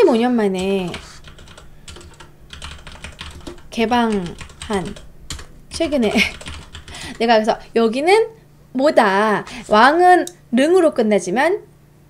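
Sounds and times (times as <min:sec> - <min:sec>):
computer keyboard typing: 0:00.5 - 0:07.8.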